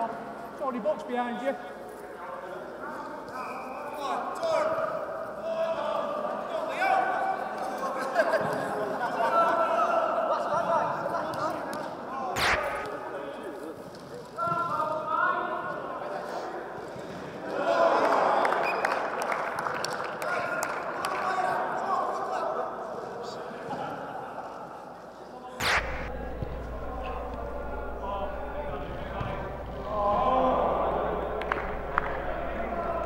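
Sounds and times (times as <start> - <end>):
men shouting and chattering: 26.2 - 33.0.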